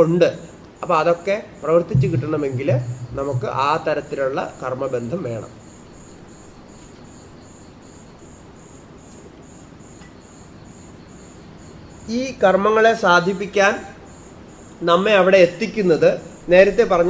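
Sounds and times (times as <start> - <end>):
cricket chirping: 0.0 - 17.0
faint room hiss: 0.0 - 17.0.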